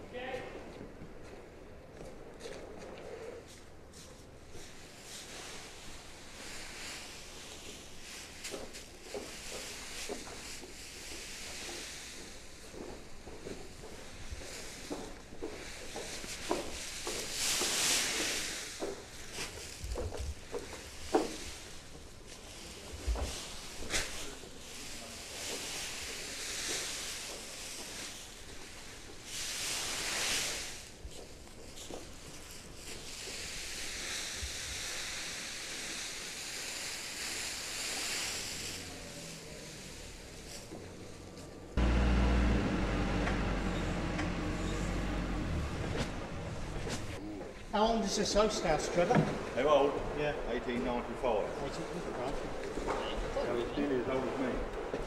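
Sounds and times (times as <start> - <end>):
hop cones rustling: 38.4 - 47.2.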